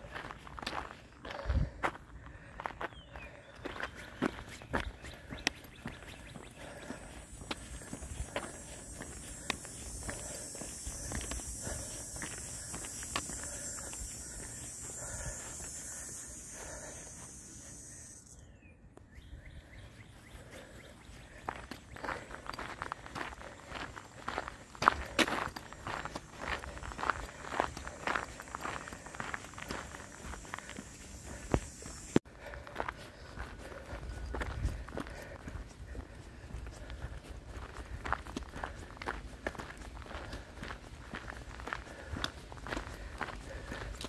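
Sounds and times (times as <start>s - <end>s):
footsteps on gravel: 0.0s - 18.0s, 20.4s - 44.0s.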